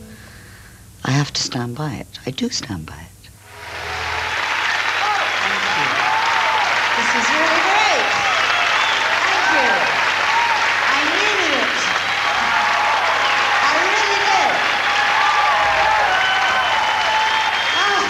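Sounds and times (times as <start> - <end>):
audience applauding: 3.4 - 18.0.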